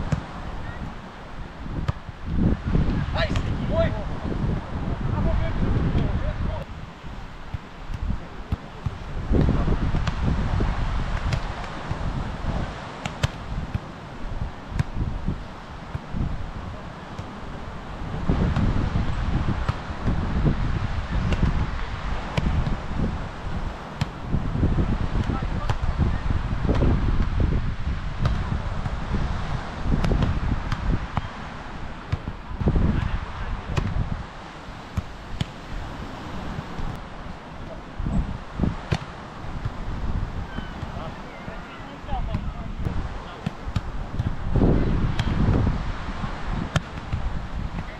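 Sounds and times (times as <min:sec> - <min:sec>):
wind buffeting microphone: 0:00.0 - 0:47.9
volleyball struck by hand: 0:07.5 - 0:10.3, 0:11.1 - 0:12.0, 0:13.0 - 0:13.9, 0:14.7 - 0:15.1, 0:21.2 - 0:22.8, 0:26.7 - 0:27.3, 0:29.9 - 0:31.3, 0:33.7 - 0:34.0, 0:35.0 - 0:35.6, 0:38.8 - 0:39.8, 0:43.4 - 0:44.4, 0:45.0 - 0:45.5, 0:46.7 - 0:47.9.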